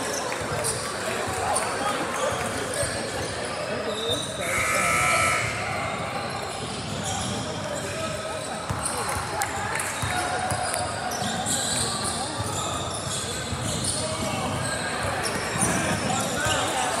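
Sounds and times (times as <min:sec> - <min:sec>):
spectators chatting in gymnasium: 0:00.0 - 0:17.0.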